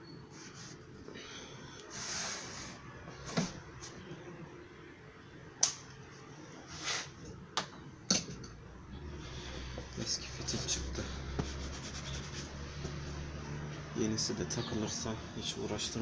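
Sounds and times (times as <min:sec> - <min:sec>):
short rubbing hiss: 0:01.9 - 0:02.8, 0:06.7 - 0:07.2, 0:10.5 - 0:13.0.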